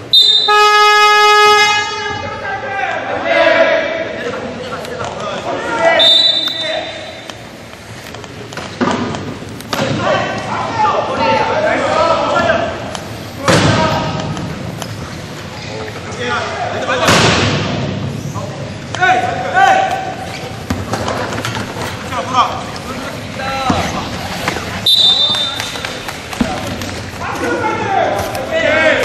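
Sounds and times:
short high referee's whistle: 0.1s - 0.8s, 6.0s - 7.2s, 24.8s - 25.8s
arena horn buzzer blast: 0.3s - 2.3s
voices on court: 1.9s - 29.0s.

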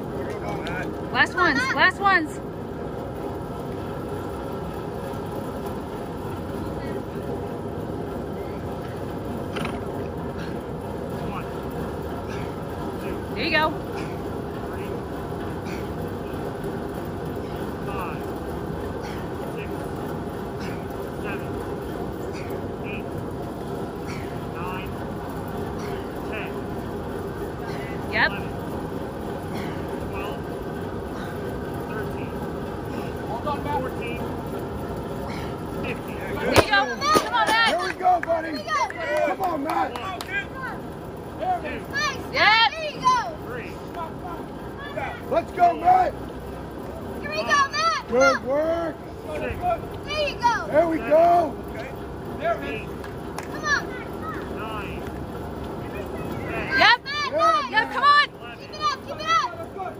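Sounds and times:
fan humming: 0.0s - 59.9s.

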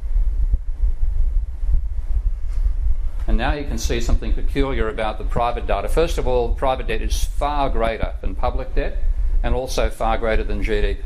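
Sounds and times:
low rumble on microphone: 0.0s - 11.0s.

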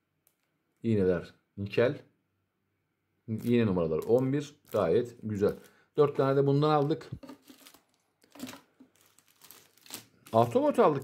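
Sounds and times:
plastic bags crinkling: 3.4s - 6.2s, 7.2s - 11.0s.

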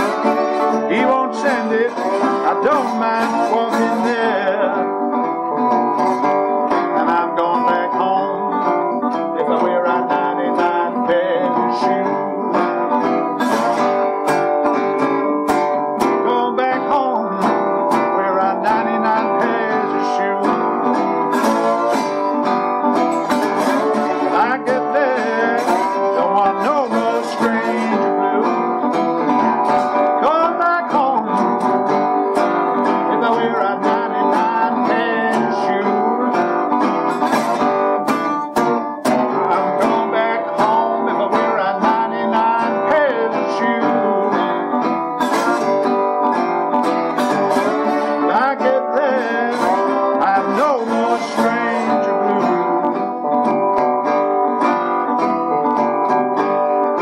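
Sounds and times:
resonator guitar playing blues: 0.0s - 57.0s.

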